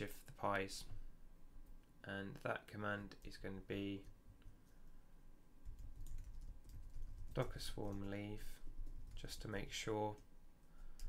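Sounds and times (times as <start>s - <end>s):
typing on keyboard: 5.6s - 9.4s.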